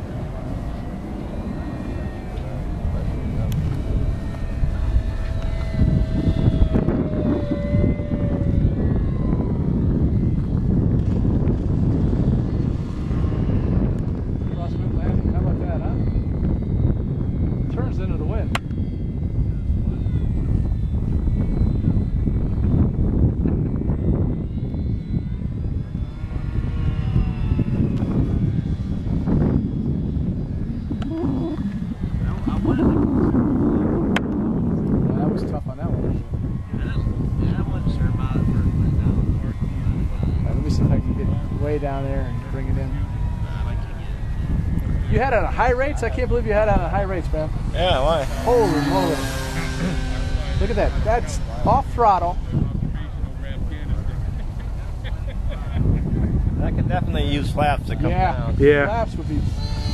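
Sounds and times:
model plane motor whining: 0:00.0 - 0:59.9
wind rumbling on microphone: 0:00.0 - 0:59.9.

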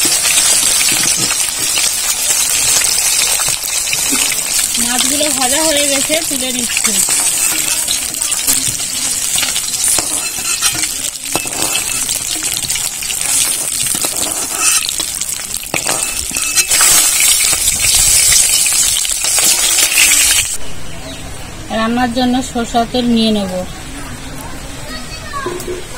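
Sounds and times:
fish sizzling in oil: 0:00.0 - 0:20.6
metal spatula scraping pan: 0:06.0 - 0:08.6, 0:09.3 - 0:17.5.

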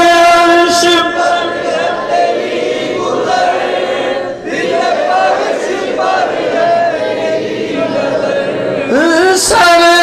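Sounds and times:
man singing into a microphone: 0:00.0 - 0:01.5, 0:08.9 - 0:10.0.

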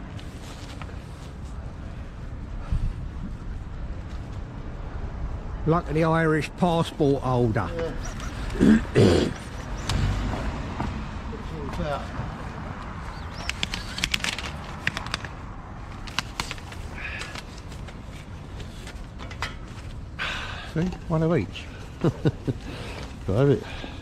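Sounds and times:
man coughing: 0:08.6 - 0:09.6
fishing gear clicks and knocks: 0:13.2 - 0:18.0.

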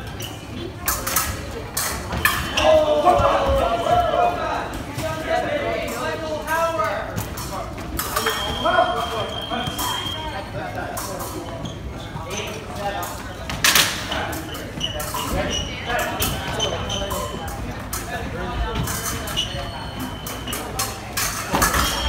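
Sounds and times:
fencing footwork: 0:00.0 - 0:04.2, 0:07.1 - 0:22.0
voices in a hall: 0:00.0 - 0:22.0.

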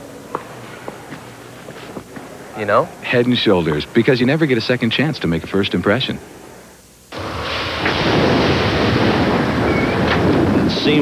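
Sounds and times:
heavy rain: 0:07.2 - 0:11.0
low rumble of thunder: 0:07.2 - 0:11.0.

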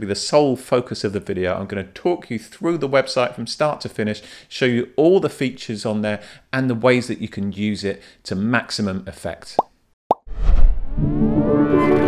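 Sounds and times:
deep whoosh: 0:10.3 - 0:11.2.

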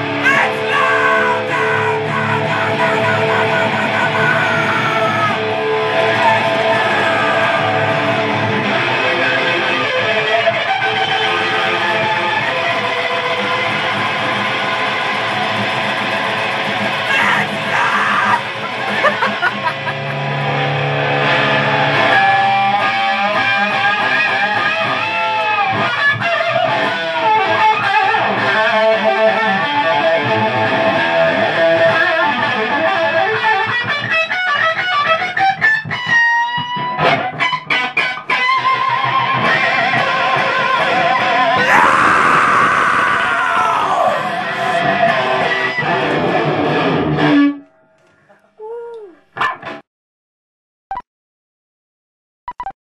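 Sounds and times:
loud electric guitar lead: 0:00.0 - 0:48.3.

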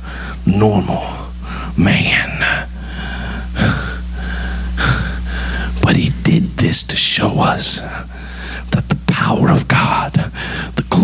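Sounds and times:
sound system hum: 0:00.0 - 0:11.0
man breathing in sharply: 0:02.8 - 0:05.8.

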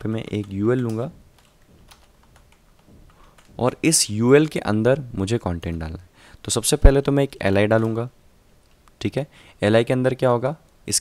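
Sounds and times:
computer keyboard keystrokes: 0:00.1 - 0:03.8, 0:07.7 - 0:08.1.

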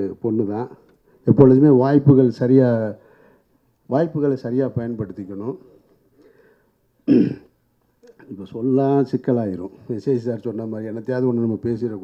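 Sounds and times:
man speaking: 0:00.0 - 0:03.0, 0:03.9 - 0:05.8, 0:08.2 - 0:12.0
man clearing throat: 0:07.0 - 0:07.6.

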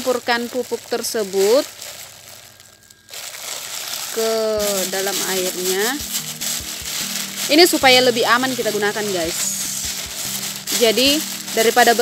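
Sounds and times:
plastic bag crinkling: 0:00.0 - 0:12.0
granules pouring into water: 0:00.5 - 0:07.9.

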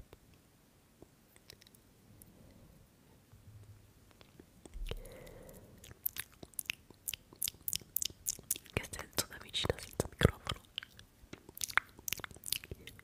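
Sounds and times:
wet mouth clicks and lip smacks: 0:01.3 - 0:01.8, 0:04.1 - 0:05.2, 0:05.8 - 0:13.0.

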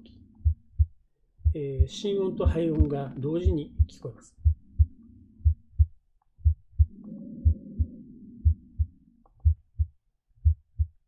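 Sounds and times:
heartbeat lub-dub: 0:00.0 - 0:11.0.

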